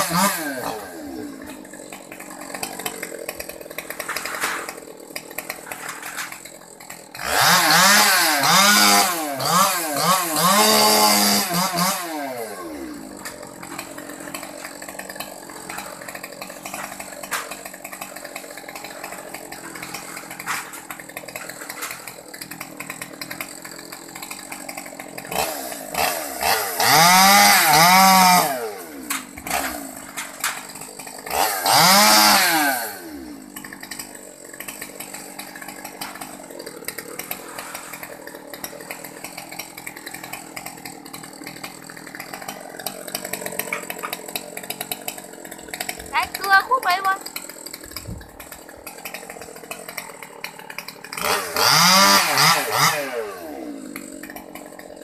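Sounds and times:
chainsaw idling and revving: 0.0 - 55.0.

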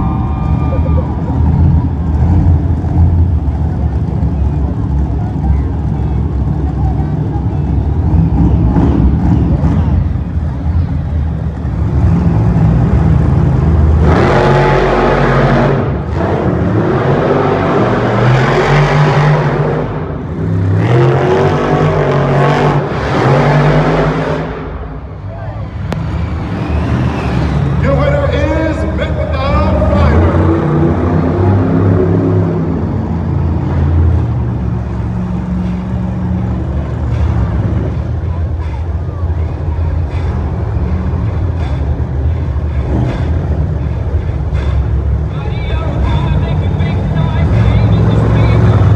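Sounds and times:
monster truck engines racing: 0.0 - 48.9.

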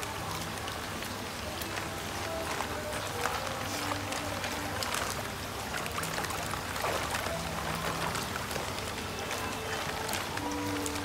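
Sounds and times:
water splashing in plastic tub: 0.0 - 11.0
plastic bag rustling: 1.4 - 11.0.

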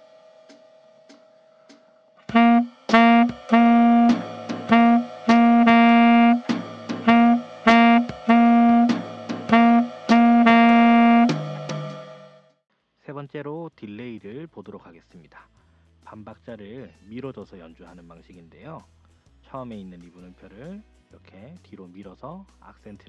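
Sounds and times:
tenor saxophone jazz phrase: 2.3 - 11.4.

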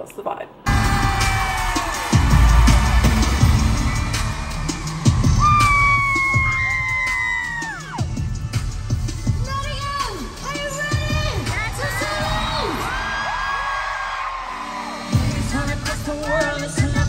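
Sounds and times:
audience screaming: 0.7 - 8.4, 10.5 - 16.8
live pop music with heavy bass: 0.7 - 13.8, 14.7 - 17.0.

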